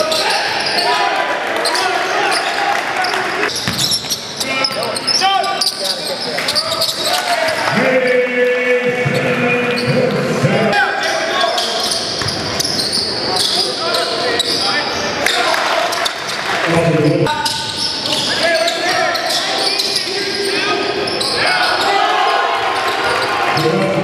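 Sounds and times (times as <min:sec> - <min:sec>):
sneakers squeaking: 0:00.0 - 0:07.8, 0:09.0 - 0:10.2, 0:11.0 - 0:16.5, 0:17.3 - 0:24.0
spectators' voices echoing: 0:00.0 - 0:24.0
basketball bouncing on hardwood: 0:03.6 - 0:04.0.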